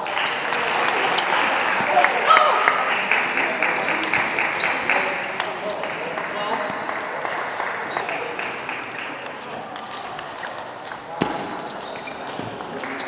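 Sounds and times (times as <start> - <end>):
scattered applause: 0.0 - 11.2, 12.0 - 13.0
player shouting: 2.2 - 2.7.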